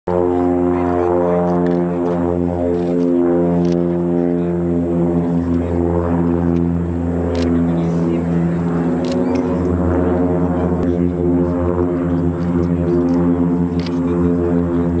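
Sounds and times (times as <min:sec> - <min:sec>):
propeller aircraft flying past: 0:00.1 - 0:15.0.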